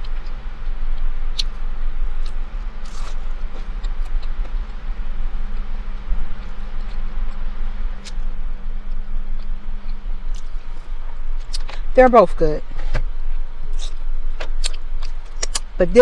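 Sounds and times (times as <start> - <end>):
car engine idling hum: 0.0 - 16.0
chewing clicks: 13.7 - 15.7.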